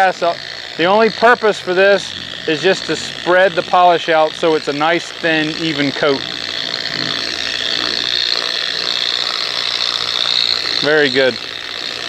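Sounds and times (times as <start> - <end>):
orbital polisher whining: 0.0 - 12.0.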